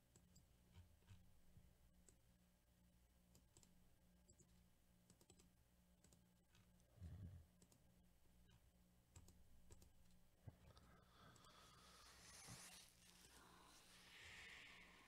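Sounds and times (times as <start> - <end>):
computer mouse clicks: 3.3 - 4.5, 5.1 - 6.7, 7.6 - 7.8, 8.5 - 10.2.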